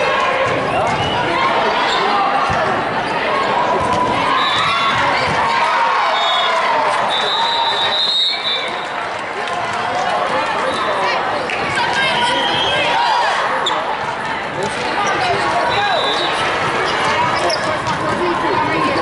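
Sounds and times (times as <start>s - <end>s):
many overlapping voices: 0.0s - 19.0s
balls struck and bouncing: 3.8s - 5.5s, 16.6s - 18.8s
referee's whistle: 4.3s - 4.8s, 6.0s - 8.8s, 12.0s - 13.0s, 15.7s - 16.4s.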